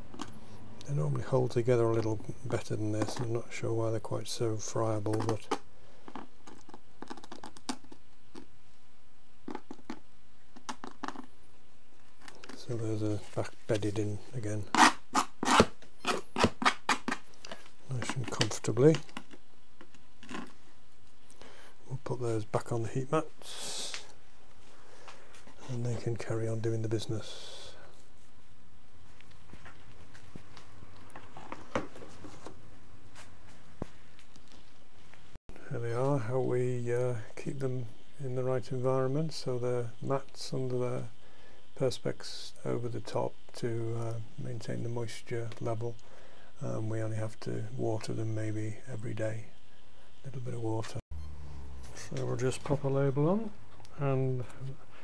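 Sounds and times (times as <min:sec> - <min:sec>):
hand tool scraping soil: 0:14.6 - 0:16.7.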